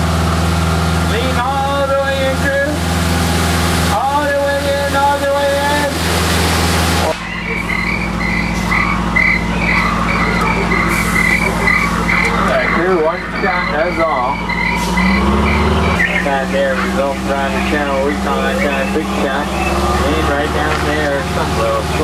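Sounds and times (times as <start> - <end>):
boat engine low hum: 0.0 - 22.0
wavering voice-like calls: 7.0 - 22.0
high chirping: 7.2 - 21.3.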